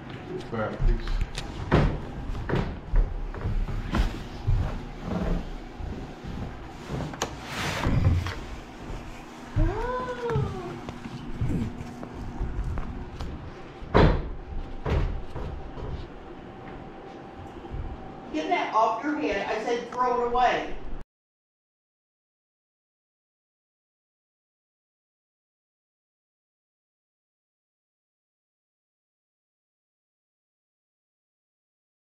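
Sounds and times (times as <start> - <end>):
knocks and thumps on wooden floors: 1.6 - 6.0, 13.8 - 16.0.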